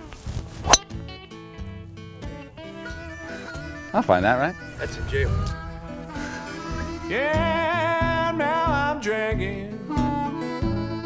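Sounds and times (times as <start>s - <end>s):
guitar music: 0.6s - 11.0s
golf driver striking ball: 0.7s - 0.9s.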